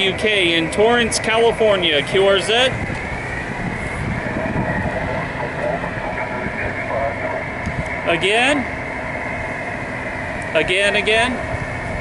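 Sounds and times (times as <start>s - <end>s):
muffled radio hiss: 0.0s - 12.0s
faint garbled radio voice: 4.3s - 8.7s.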